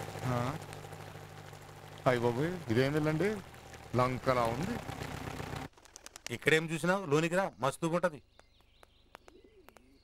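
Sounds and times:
man speaking: 2.1s - 4.9s, 6.3s - 8.2s
faint bird chirps: 7.2s - 10.0s
low coo-like bird call: 9.2s - 10.0s.

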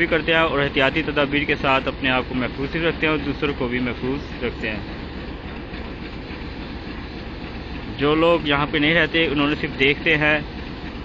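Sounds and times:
train rumbling on railway: 0.0s - 11.0s.

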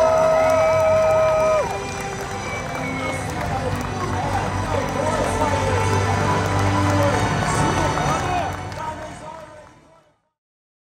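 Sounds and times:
crowd talking: 0.0s - 10.2s.

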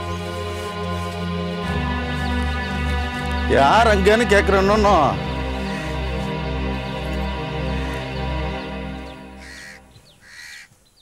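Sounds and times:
background music: 0.0s - 10.3s
crow cawing: 5.2s - 6.6s, 7.6s - 8.5s, 9.4s - 10.7s.

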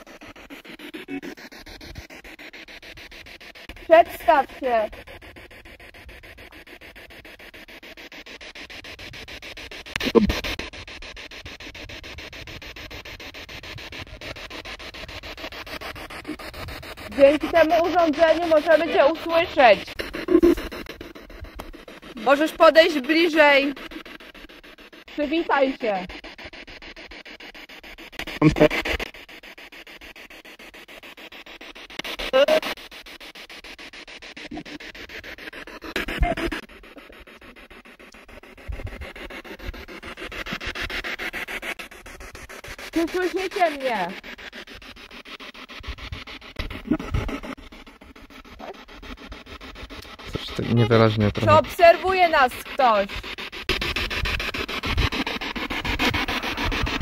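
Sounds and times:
radio static chopping: 0.5s - 2.2s, 9.8s - 10.9s, 14.5s - 29.3s, 33.9s - 41.1s, 46.0s - 57.0s.

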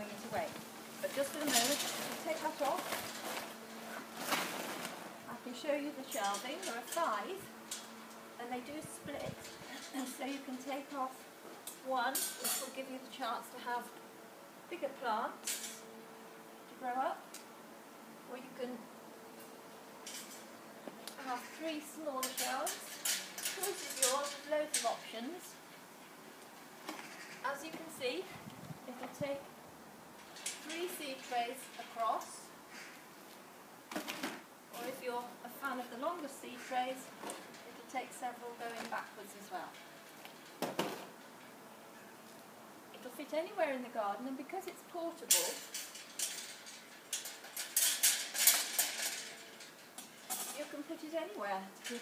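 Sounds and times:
woman speaking: 0.0s - 2.9s, 5.3s - 7.5s, 8.4s - 11.2s, 11.8s - 13.9s, 14.7s - 15.4s, 16.8s - 17.2s, 18.3s - 18.9s, 21.2s - 22.9s, 23.5s - 25.6s, 27.4s - 29.5s, 30.6s - 32.5s, 34.7s - 39.8s, 43.0s - 45.7s, 50.5s - 52.0s
metal shelving clinking and rattling: 0.2s - 11.1s, 11.7s - 13.0s, 15.4s - 15.9s, 20.0s - 20.5s, 21.2s - 25.6s, 30.2s - 32.4s, 33.9s - 41.6s, 45.2s - 52.0s.

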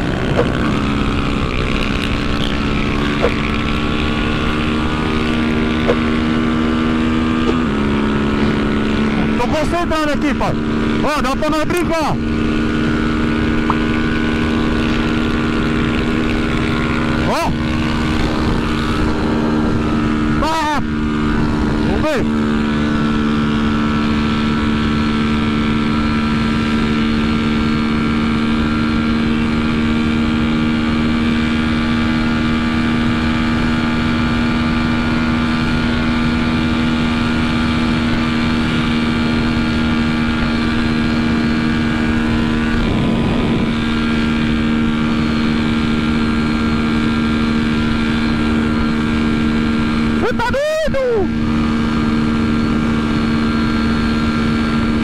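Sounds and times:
motorcycle engine at full speed: 0.0s - 55.0s
wind noise: 12.6s - 22.0s, 33.8s - 49.9s.

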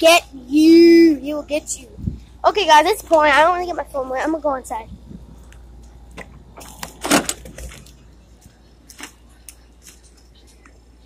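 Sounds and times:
steady low rumble: 0.0s - 11.0s
door opening and shutting: 6.2s - 7.9s.

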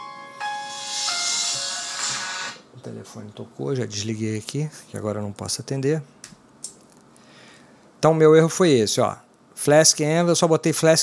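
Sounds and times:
phone ringtone melody: 0.0s - 2.6s.

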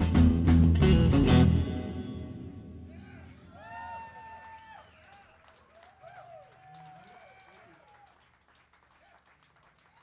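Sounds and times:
crowd whooping and calling: 3.0s - 5.2s.

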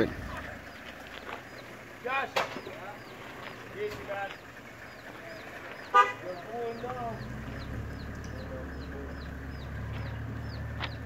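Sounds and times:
engine rumbling: 0.0s - 11.0s.

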